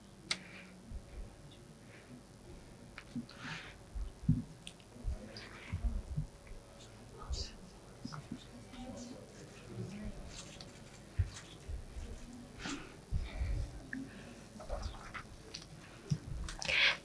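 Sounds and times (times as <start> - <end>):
faint murmuring voices: 0.0 - 17.0.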